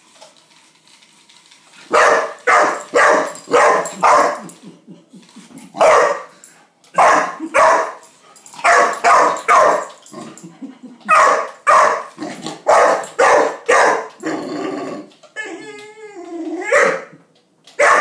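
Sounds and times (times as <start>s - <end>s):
young dog barking: 1.9s - 4.4s, 5.8s - 6.3s, 7.0s - 8.0s, 8.6s - 9.9s, 11.1s - 14.1s, 16.7s - 17.1s, 17.8s - 18.0s.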